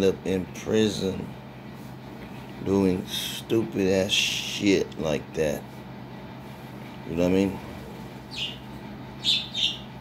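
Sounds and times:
bird chirping: 8.3 - 10.0.

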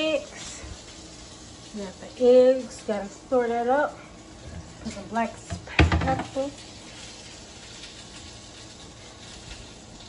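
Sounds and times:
bacon and sausages sizzling: 0.0 - 10.0.

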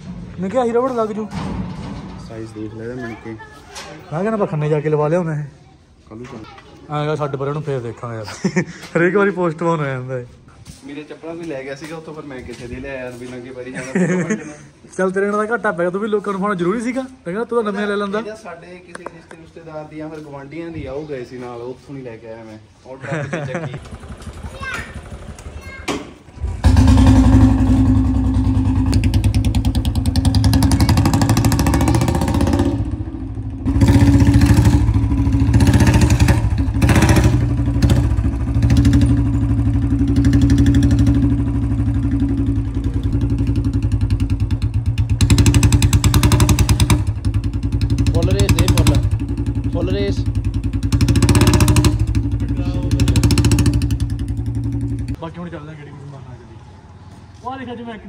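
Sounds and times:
motorcycle engine revving: 23.8 - 25.6, 26.3 - 55.2
motorcycle engine starting and idling: 23.8 - 55.2.

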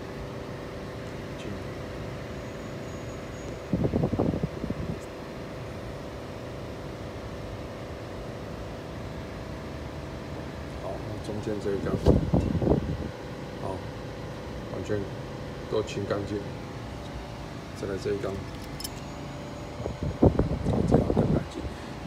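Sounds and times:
machine hum with tones: 0.0 - 22.0.

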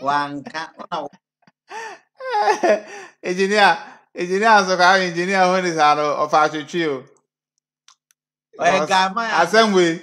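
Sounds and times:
wordless voiced speech sounds: 0.0 - 1.2, 1.8 - 7.2, 8.6 - 10.0.

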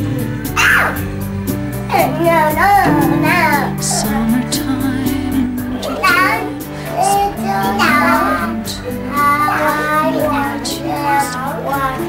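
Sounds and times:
child singing: 1.9 - 12.0
digital piano notes: 2.0 - 10.0.

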